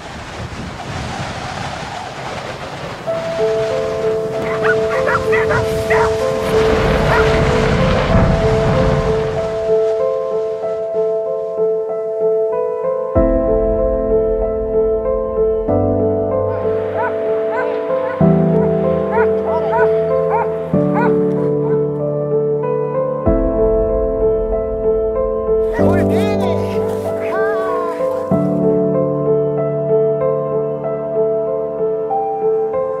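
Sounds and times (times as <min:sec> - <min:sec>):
background music with held notes: 0:03.1 - 0:33.0
dog whining in high yips: 0:04.4 - 0:06.1, 0:17.0 - 0:21.2.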